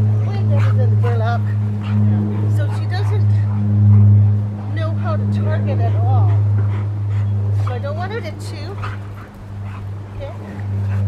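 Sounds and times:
low motor hum: 0.0 - 11.0.

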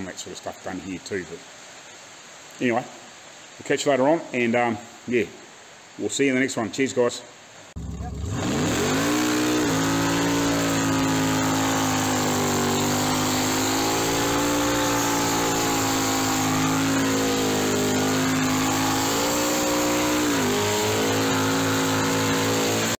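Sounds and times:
car engine at high revs: 7.8 - 22.9.

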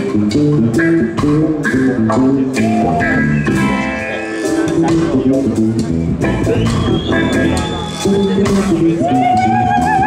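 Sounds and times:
bass guitar line: 0.0 - 10.0
electric guitar: 0.0 - 10.0
reggae band playing: 0.0 - 10.0
steady drum beat: 0.0 - 10.0.

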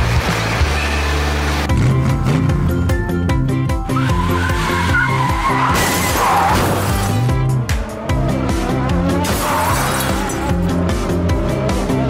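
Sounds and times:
upbeat background music: 0.0 - 12.0
skid-like squeal: 3.9 - 7.0.

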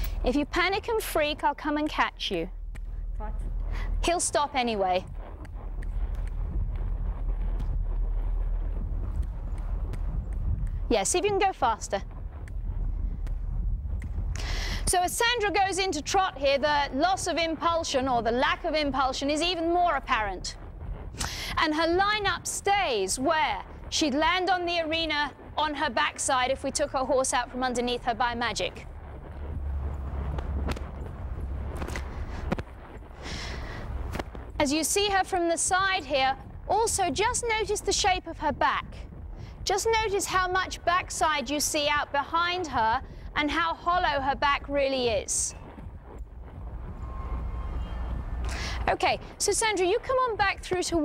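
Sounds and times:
hooves thudding on sand: 0.0 - 51.0
steady low rumble: 0.0 - 51.0.

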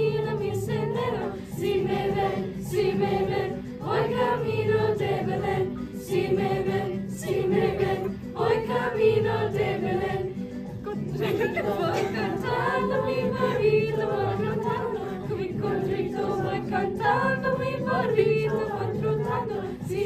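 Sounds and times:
youth choir singing: 0.0 - 20.0.

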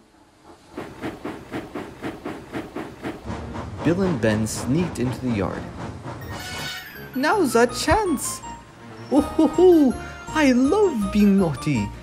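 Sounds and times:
steam locomotive chuffing: 0.0 - 9.5.

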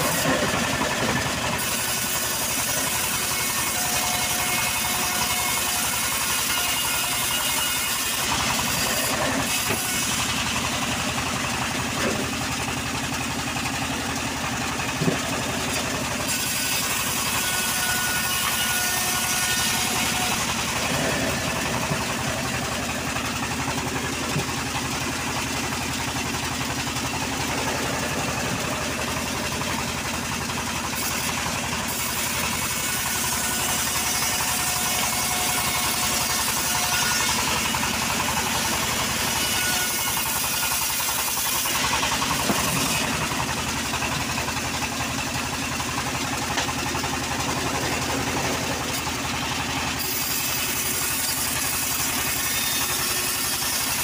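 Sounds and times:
engine drone: 0.0 - 54.0
saw blade cutting wood: 0.0 - 54.0.

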